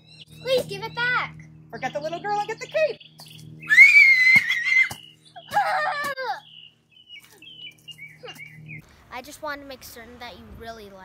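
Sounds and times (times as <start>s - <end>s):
girl screaming: 3.7s - 6.5s
person laughing: 5.4s - 6.5s.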